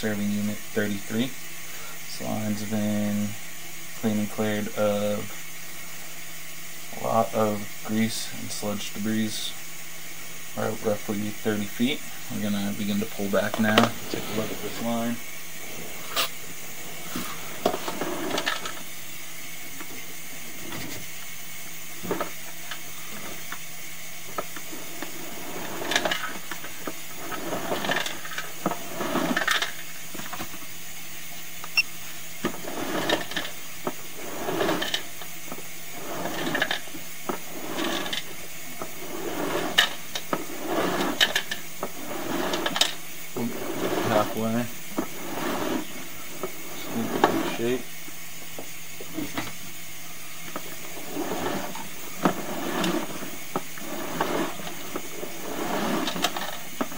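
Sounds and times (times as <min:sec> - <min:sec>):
faint hum: 0:00.0 - 0:56.9
steady hiss: 0:00.0 - 0:56.9.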